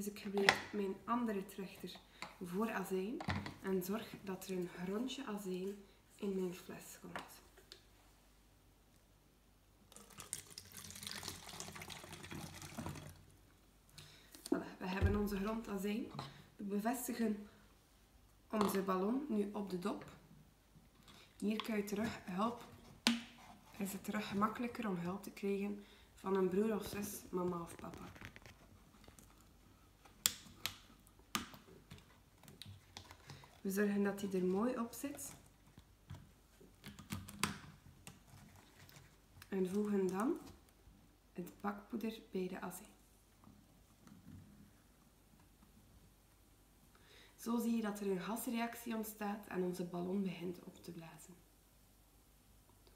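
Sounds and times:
liquid pouring through funnel: 9.9s - 13.4s.

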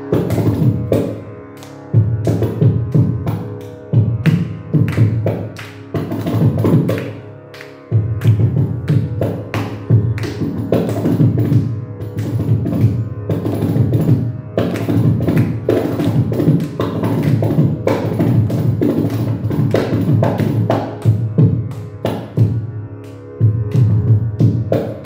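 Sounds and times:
frame drum and drum playing: 2.0s - 7.0s, 7.9s - 22.6s, 23.4s - 25.0s.

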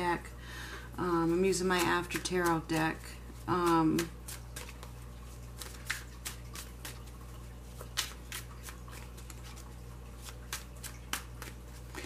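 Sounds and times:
cards being shuffled: 1.3s - 12.0s.

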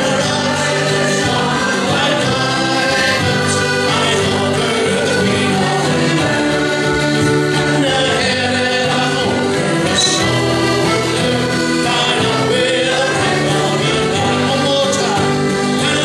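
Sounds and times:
accordions: 0.0s - 16.0s
acoustic guitar: 0.0s - 16.0s
voices singing together: 0.0s - 16.0s.

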